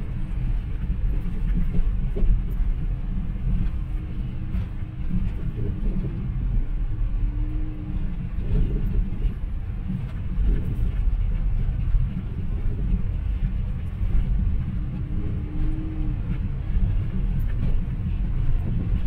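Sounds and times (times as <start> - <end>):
car engine and road noise: 0.0 - 19.0.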